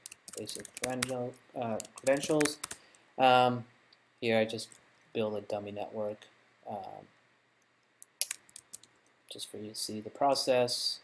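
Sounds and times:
computer keyboard typing: 0:00.0 - 0:02.8, 0:08.1 - 0:08.9.

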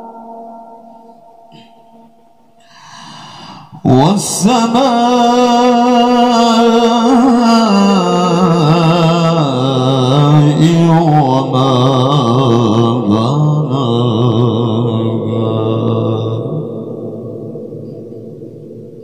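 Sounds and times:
man reciting melodically over pa: 0:03.6 - 0:17.6.

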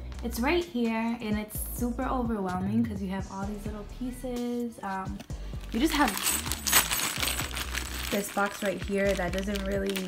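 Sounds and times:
screws clinking in plastic bag: 0:05.6 - 0:10.0.

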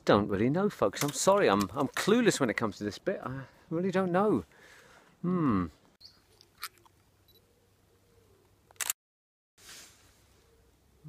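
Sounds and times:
camera shutter click: 0:08.7 - 0:09.0.

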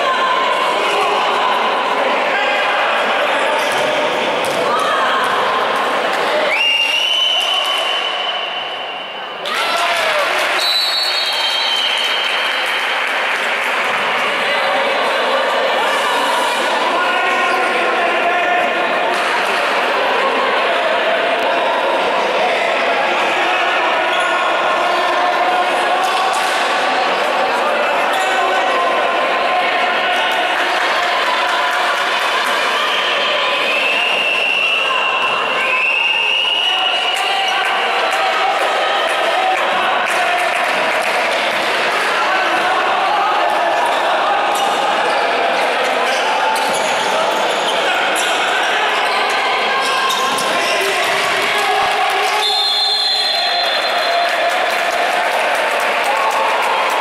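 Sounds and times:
short high whistle: 0:06.5 - 0:09.2, 0:32.9 - 0:37.1.

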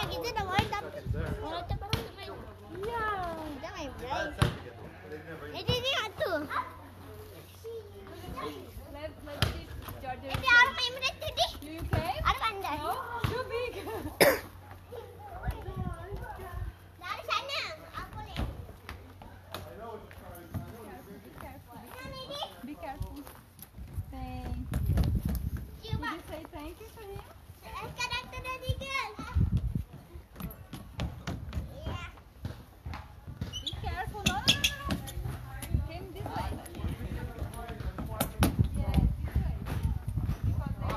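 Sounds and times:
playground chatter: 0:00.0 - 0:40.9
child's voice: 0:31.7 - 0:32.2.

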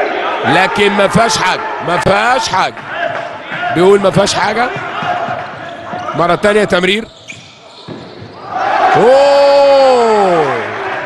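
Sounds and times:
reverberant hall background: 0:00.0 - 0:11.0
ball bouncing on hall floor: 0:02.6 - 0:06.7, 0:07.3 - 0:08.5.

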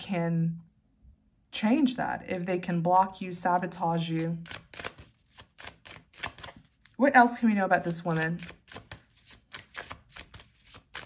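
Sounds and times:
cards clicking on a table: 0:04.4 - 0:06.7, 0:08.4 - 0:11.0.

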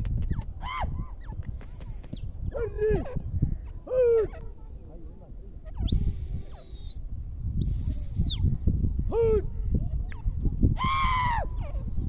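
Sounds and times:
bird calling whistles: 0:01.6 - 0:02.3, 0:05.7 - 0:08.5.

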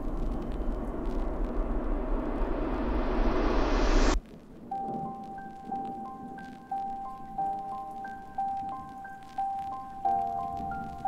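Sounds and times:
steady low bass: 0:00.0 - 0:04.2
white-noise riser hiss: 0:00.0 - 0:11.0.

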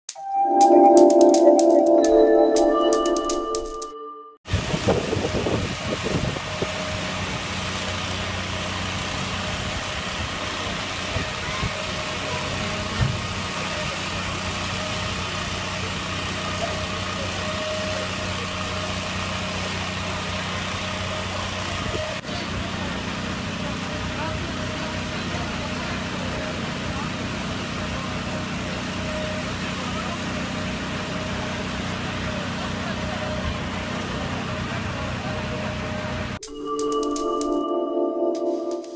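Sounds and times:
diesel engine running steadily: 0:04.5 - 0:36.4.

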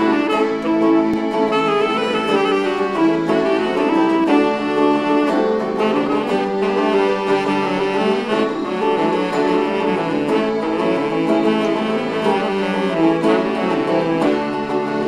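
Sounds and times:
saxophone melody: 0:00.0 - 0:15.0
strummed string instrument: 0:00.0 - 0:15.0.

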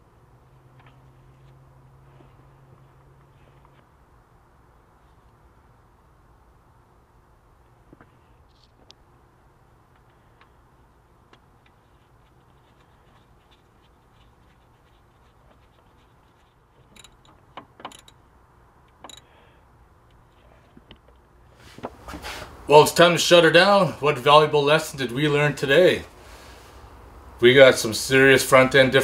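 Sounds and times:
low steady hum: 0:00.0 - 0:29.0
hand oil pump clicks and scrapes: 0:15.0 - 0:18.2, 0:18.9 - 0:19.3.

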